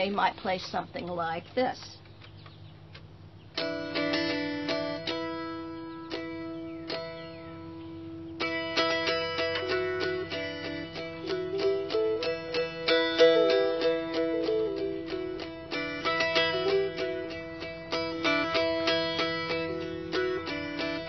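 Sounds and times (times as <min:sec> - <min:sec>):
mountain dulcimer strummed: 0:03.6 - 0:21.0.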